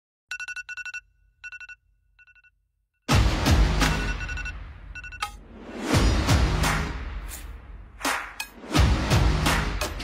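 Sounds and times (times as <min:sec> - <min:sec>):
phone alarm beeping: 0:00.3 - 0:02.6, 0:03.9 - 0:05.4.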